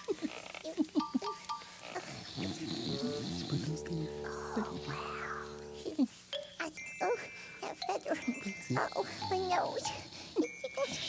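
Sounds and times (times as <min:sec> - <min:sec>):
light music: 0:00.9 - 0:11.0
man snoring: 0:02.3 - 0:05.4
sustained music notes: 0:02.9 - 0:06.0.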